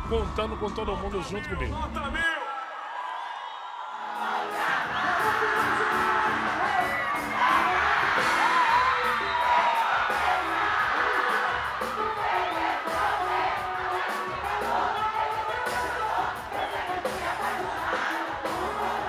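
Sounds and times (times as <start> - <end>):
crowd cheering: 0.0 - 19.0
live band playing: 4.2 - 19.0
person singing: 4.4 - 19.0.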